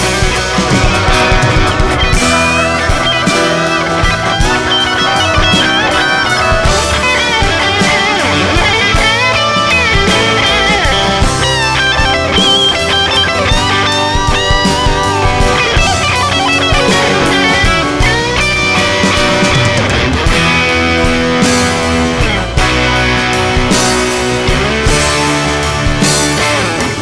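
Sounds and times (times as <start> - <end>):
electric guitar solo: 0.0 - 27.0
rock band playing: 0.0 - 27.0.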